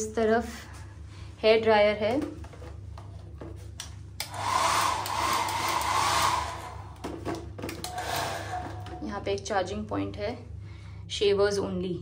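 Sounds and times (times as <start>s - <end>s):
hair dryer blowing: 4.2s - 9.1s.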